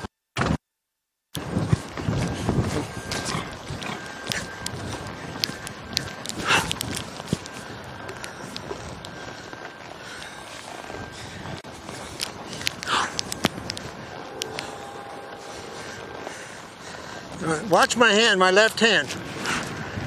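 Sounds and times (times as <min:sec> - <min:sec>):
horse hooves on dirt: 0:01.4 - 0:20.0.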